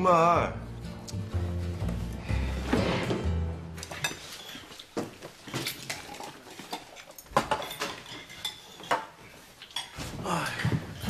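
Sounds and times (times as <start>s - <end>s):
dishes and cutlery clattering: 3.8s - 10.2s.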